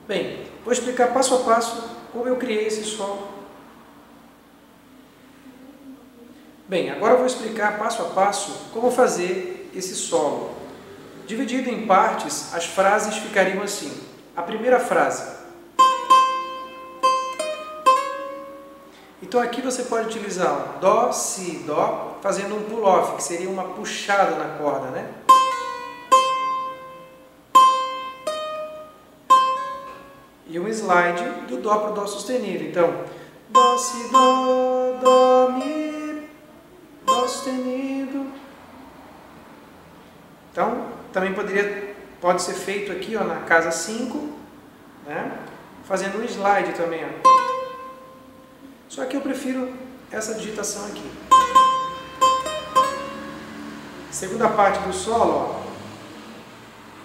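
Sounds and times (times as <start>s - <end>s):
small guitar notes picked: 15.4s - 19.1s, 25.2s - 30.4s, 33.5s - 37.7s, 47.2s - 48.8s, 51.3s - 53.9s.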